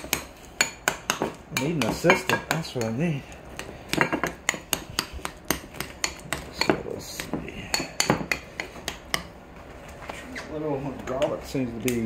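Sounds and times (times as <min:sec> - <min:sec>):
metal spoon mashing in a bowl: 0:00.0 - 0:09.3.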